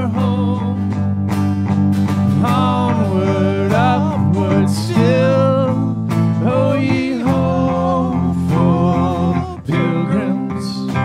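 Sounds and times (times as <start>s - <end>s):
man singing: 0.0s - 1.0s, 2.3s - 11.0s
strummed guitars: 0.0s - 11.0s
worship band playing: 2.0s - 11.0s.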